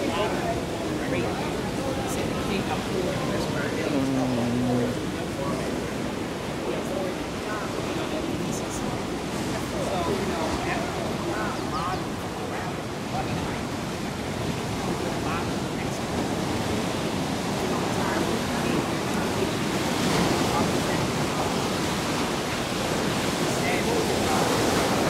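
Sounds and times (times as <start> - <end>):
ocean surf breaking on beach: 0.0 - 25.0.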